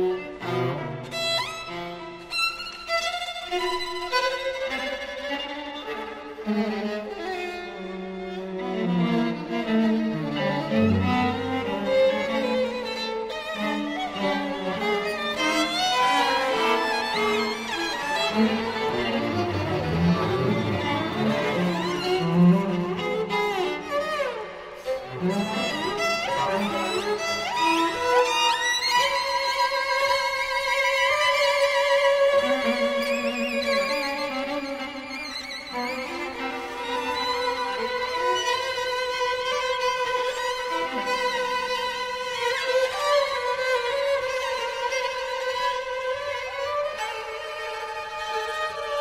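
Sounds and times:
string trio playing classical piece: 0:00.0 - 0:49.0.

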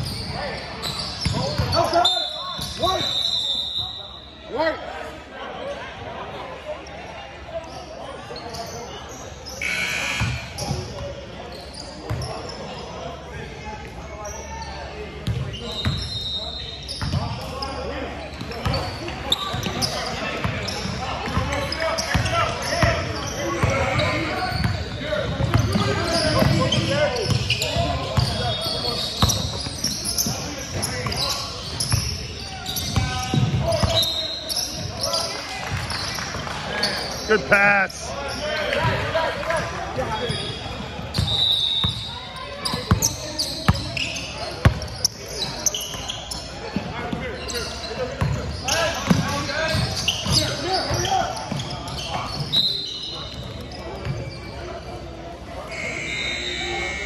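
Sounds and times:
echoing voices: 0:37.2 - 0:40.2.

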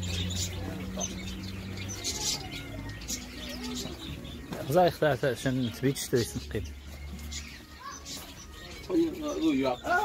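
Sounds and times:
birds chirping and cooing: 0:00.0 - 0:10.0.

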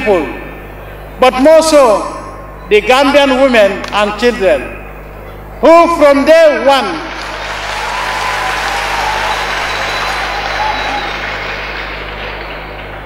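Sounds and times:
crowd applauding: 0:07.0 - 0:13.0.

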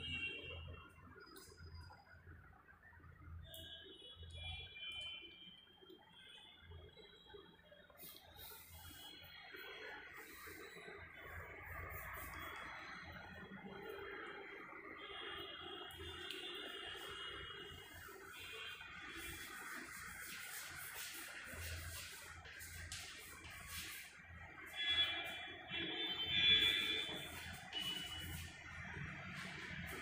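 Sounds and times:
chalk squeaking on chalkboard: 0:08.0 - 0:12.6, 0:17.0 - 0:30.0.

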